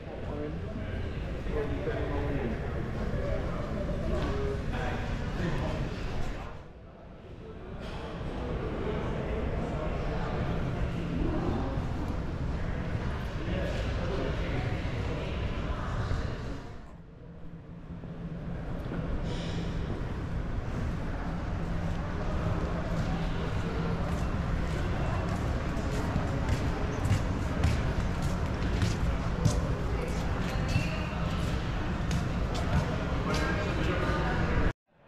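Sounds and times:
steady low hum: 0.0 - 34.7.

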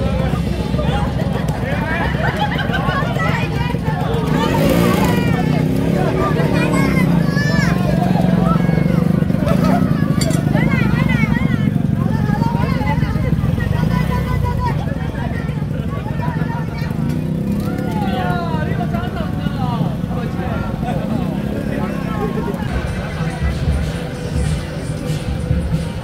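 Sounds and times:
engines idling: 0.0 - 26.0
people talking: 0.0 - 26.0.

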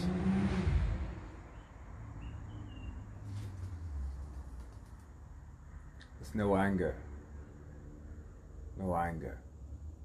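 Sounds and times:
passing vehicle rumble: 0.0 - 8.8.

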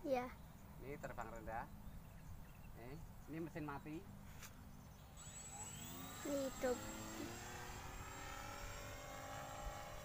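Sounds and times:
propeller motor whirring: 3.4 - 10.0.

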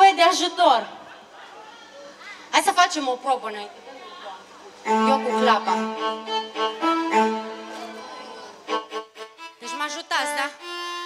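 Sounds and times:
keyboard playing string voice melody: 4.8 - 11.0.

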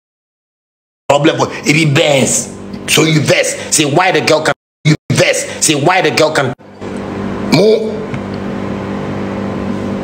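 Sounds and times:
steady mechanical hum: 1.1 - 10.0.

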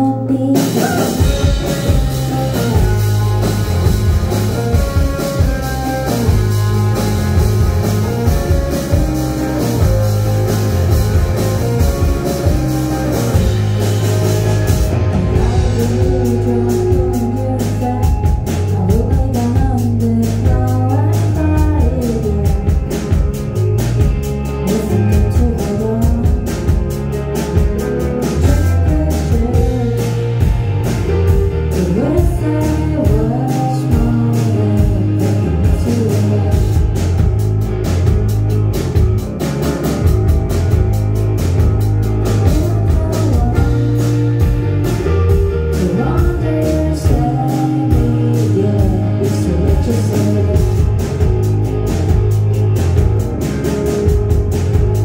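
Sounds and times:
drum kit beat: 0.0 - 55.0
indie rock band playing live: 0.0 - 55.0
drum and cymbal hits: 0.6 - 19.9
sliding melodic line: 1.2 - 20.2.

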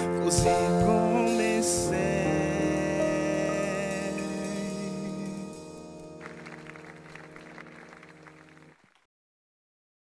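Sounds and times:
held gospel chord: 0.0 - 8.8
audience applauding: 6.2 - 9.1.

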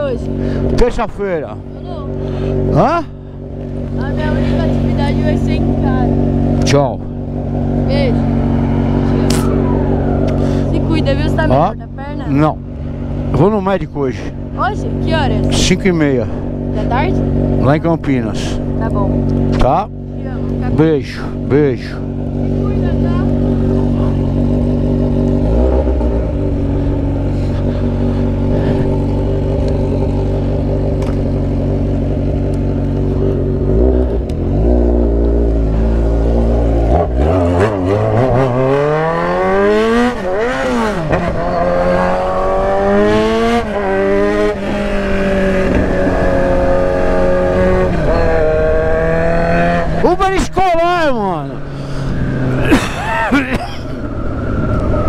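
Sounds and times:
motorcycle engine: 0.0 - 55.0.

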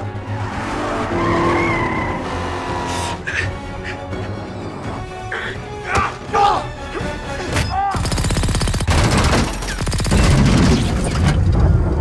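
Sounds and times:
vehicle crashing and tumbling: 9.1 - 12.0.

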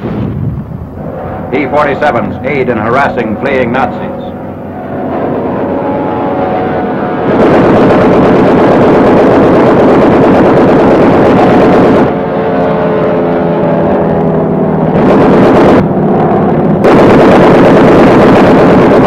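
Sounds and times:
aircraft engine drone: 0.0 - 19.0
gunfire and blasts: 6.9 - 12.7, 13.3 - 19.0.

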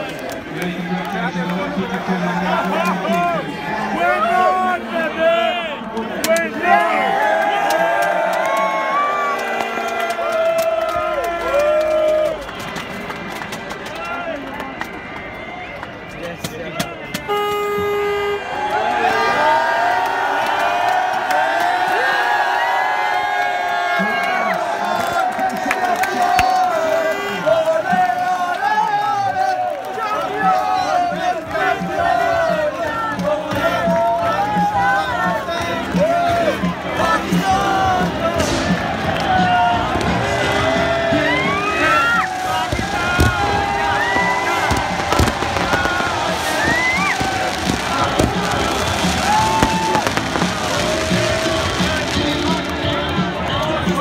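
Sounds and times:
crowd cheering: 0.0 - 54.0
horns blaring: 10.9 - 19.7, 37.1 - 53.8
horn held note: 17.2 - 18.6
music: 25.9 - 54.0
people shouting: 37.1 - 53.0
fireworks bangs and launches: 42.2 - 52.9.

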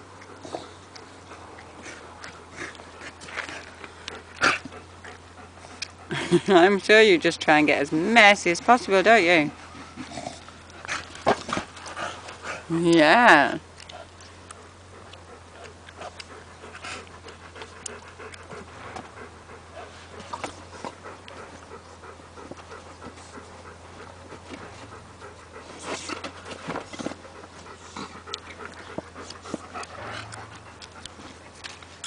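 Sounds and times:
dog panting: 0.0 - 32.0.

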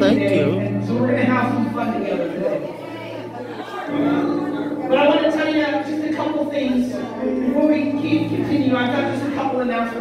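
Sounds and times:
voices in a large hall: 0.0 - 10.0.

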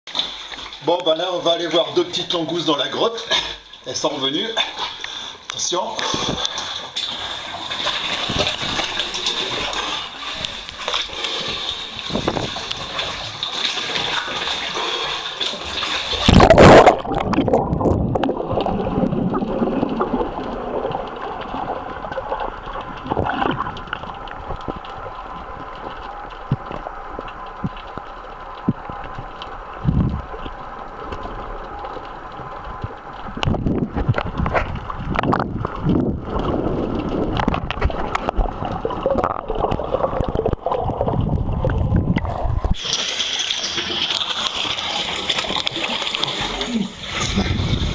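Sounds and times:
water sloshing and splashing: 0.1 - 47.9
muffled underwater gurgling: 16.2 - 26.8, 32.7 - 42.9.

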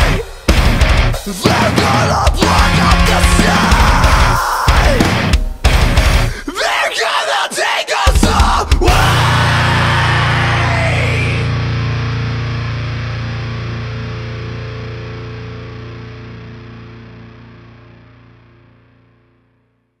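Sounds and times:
distorted guitar chord ringing: 4.9 - 6.3, 9.0 - 19.8.

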